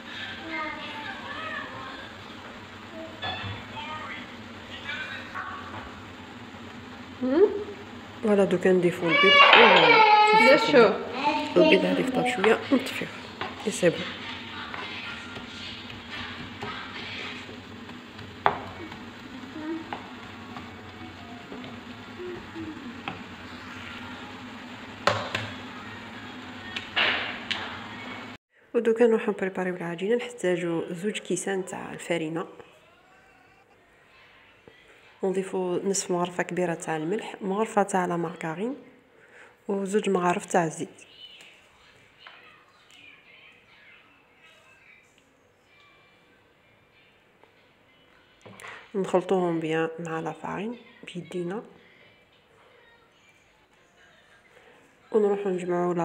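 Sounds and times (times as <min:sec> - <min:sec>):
children talking and playing: 0:00.0 - 0:04.5, 0:08.8 - 0:15.7, 0:40.8 - 0:49.0, 0:50.2 - 0:56.0
frying sizzle in a pan: 0:00.0 - 0:28.4
wooden spatula knocking on pan: 0:17.8 - 0:19.1, 0:25.0 - 0:25.6.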